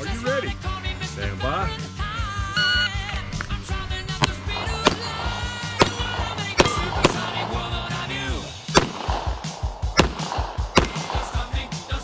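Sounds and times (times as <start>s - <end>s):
background music: 0.0s - 12.0s
handgun shots: 4.2s - 7.7s, 8.7s - 12.0s.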